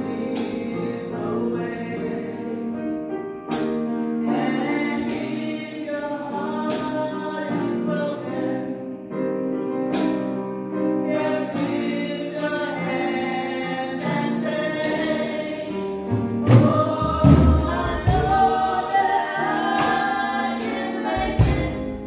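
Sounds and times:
women singing in harmony: 0:00.0 - 0:03.0, 0:04.2 - 0:09.2, 0:11.0 - 0:22.0
keyboard chords: 0:00.0 - 0:22.0.

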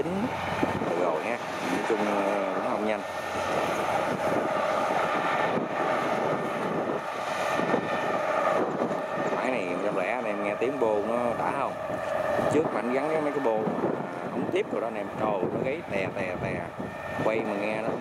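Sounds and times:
combine harvester engine droning: 0:00.0 - 0:18.0.

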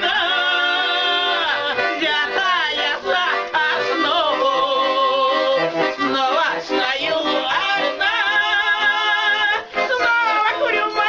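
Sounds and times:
button accordion: 0:00.0 - 0:11.0
woman and man singing: 0:00.0 - 0:11.0.

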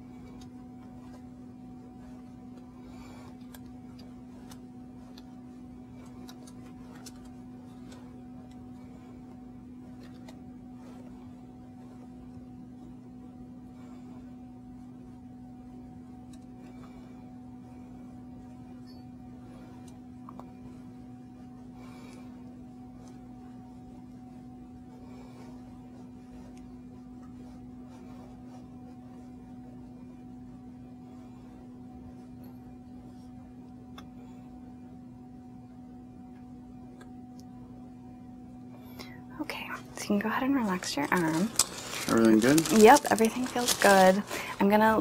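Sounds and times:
low electrical hum: 0:00.0 - 0:45.0
woman speaking: 0:39.3 - 0:45.0.

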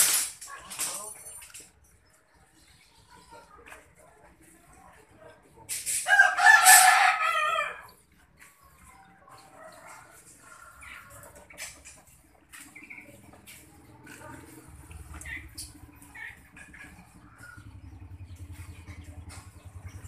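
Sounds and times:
rooster crowing: 0:06.0 - 0:07.9.

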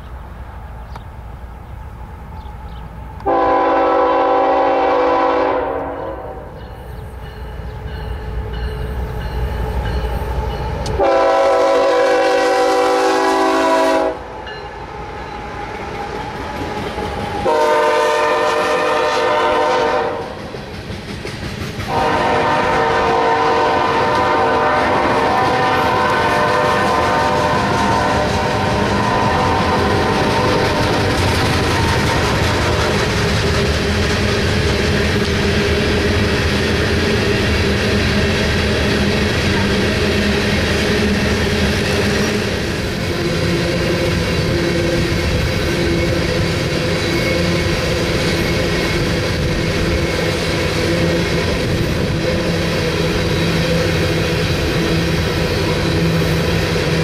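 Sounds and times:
locomotive engine rumbling: 0:00.0 - 0:57.0
train cars clattering past: 0:02.4 - 0:57.0
locomotive air horn blasts: 0:03.2 - 0:06.5, 0:11.0 - 0:14.3, 0:17.4 - 0:20.4, 0:21.9 - 0:33.0.

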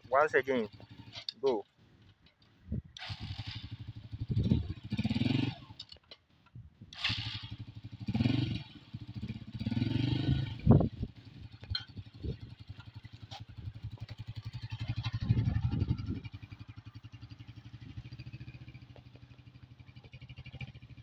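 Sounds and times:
small motorcycle engine revving: 0:00.3 - 0:01.3, 0:03.0 - 0:05.9, 0:06.9 - 0:21.0.

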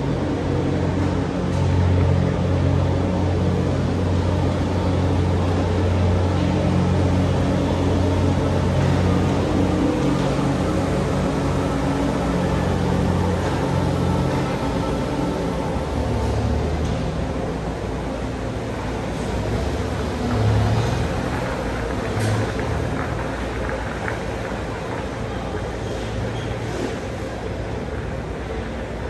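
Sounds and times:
constant noisy background: 0:00.0 - 0:29.0
low machine hum: 0:00.0 - 0:29.0.

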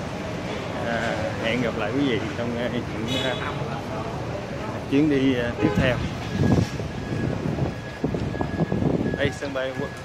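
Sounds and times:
vehicle traffic: 0:00.0 - 0:10.0
wind on microphone: 0:05.7 - 0:09.5.

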